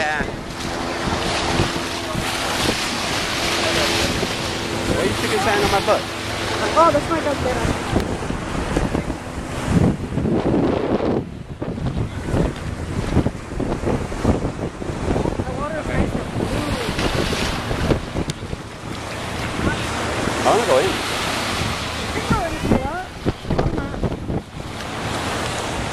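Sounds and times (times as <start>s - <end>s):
ocean surf: 0.0s - 25.9s
wind buffeting microphone: 0.0s - 25.9s.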